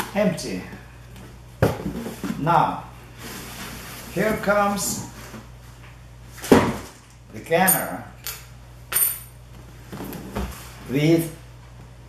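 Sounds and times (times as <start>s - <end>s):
sharp clink with bright ring: 8.9s - 9.3s.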